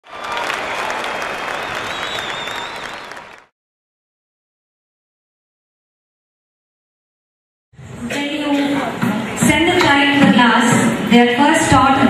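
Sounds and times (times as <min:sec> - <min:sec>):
audience applause: 0:00.0 - 0:03.5.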